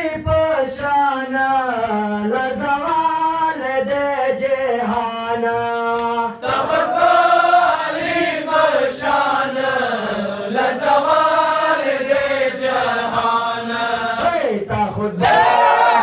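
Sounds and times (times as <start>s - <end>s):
men chanting a lament: 0.0s - 16.0s.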